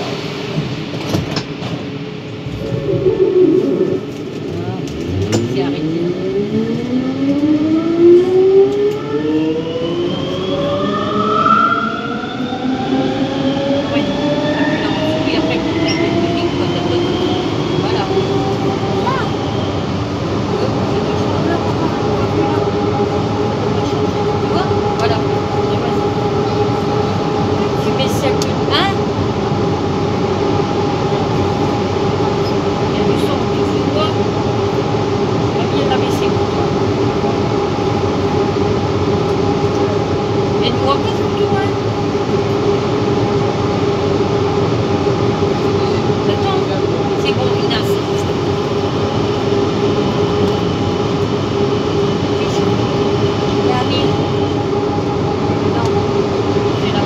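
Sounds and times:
metro train traction whine: 0:00.0 - 0:57.0
train rolling rumble: 0:00.0 - 0:57.0.

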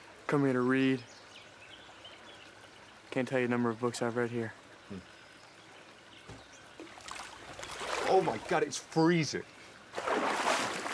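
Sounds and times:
running water: 0:00.0 - 0:10.9
faint bird calls: 0:04.4 - 0:08.4.

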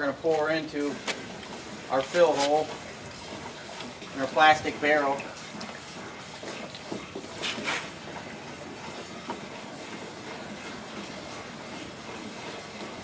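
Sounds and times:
water pouring into plastic drum: 0:00.0 - 0:13.0.

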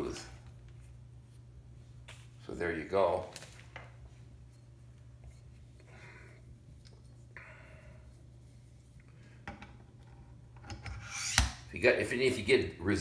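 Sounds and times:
steady low hum: 0:00.0 - 0:13.0
soft rubbing and sliding: 0:08.1 - 0:09.1.

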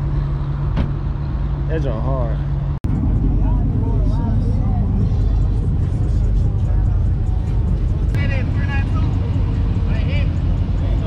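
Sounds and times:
car engines rumbling: 0:00.0 - 0:11.0.

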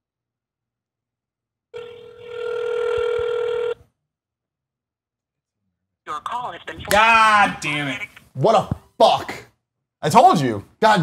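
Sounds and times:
telephone ringback tone: 0:01.8 - 0:03.8.

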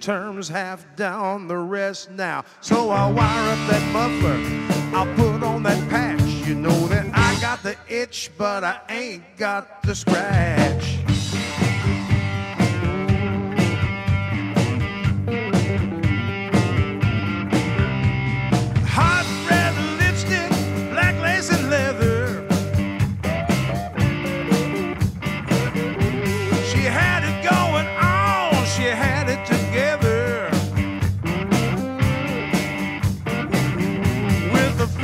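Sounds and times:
electric guitar lead: 0:02.7 - 0:07.6, 0:10.6 - 0:35.0
bass guitar: 0:02.7 - 0:07.7, 0:09.9 - 0:35.0
steady drum beat: 0:03.0 - 0:07.7, 0:09.8 - 0:35.0.

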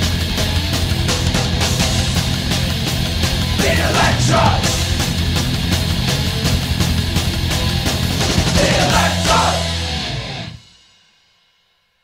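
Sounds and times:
heavy metal song: 0:00.0 - 0:10.6.

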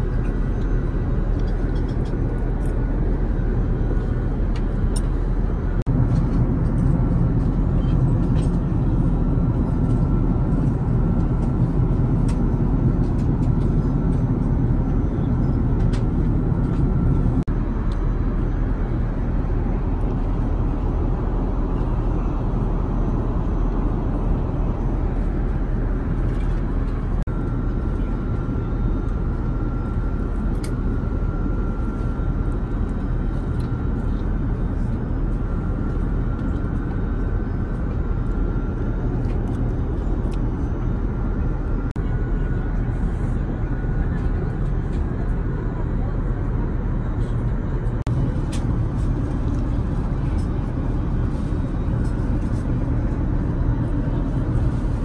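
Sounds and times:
airplane cabin airflow and engine drone: 0:00.0 - 0:55.0.

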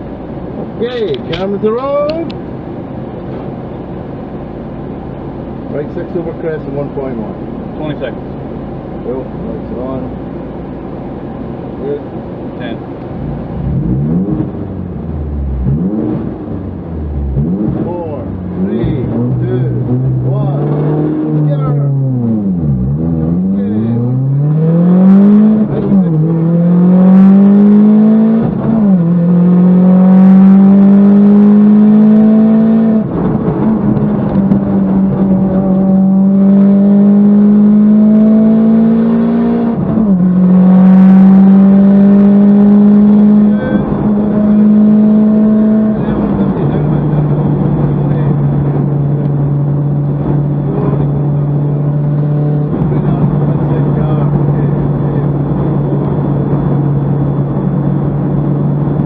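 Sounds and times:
rally car engine accelerating: 0:13.3 - 0:59.0.

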